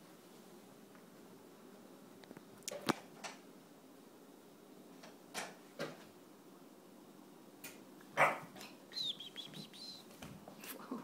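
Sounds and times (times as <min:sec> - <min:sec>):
puppy yapping: 0:08.2 - 0:08.5.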